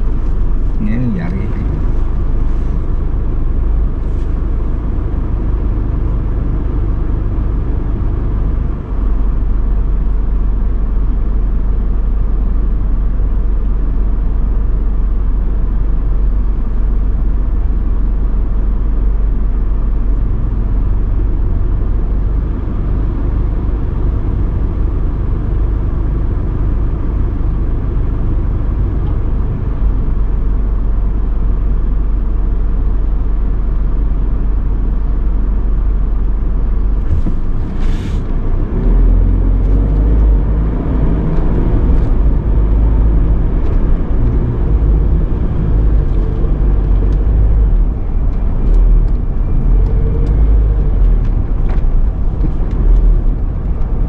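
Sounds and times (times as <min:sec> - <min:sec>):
car engine idling: 0:00.0 - 0:38.4, 0:39.2 - 0:54.0.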